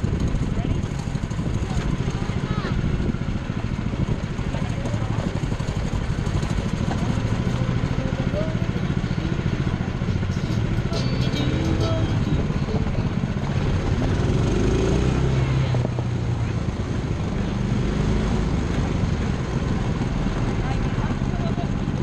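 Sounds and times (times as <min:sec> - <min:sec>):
engine rumbling: 0:00.0 - 0:22.0
people talking: 0:00.5 - 0:03.0, 0:04.4 - 0:05.5, 0:06.8 - 0:13.1, 0:20.4 - 0:22.0.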